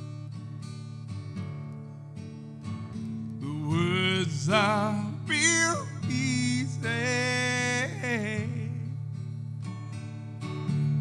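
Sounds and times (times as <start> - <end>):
acoustic guitar strumming: 0.0 - 11.0
man singing: 3.4 - 9.0.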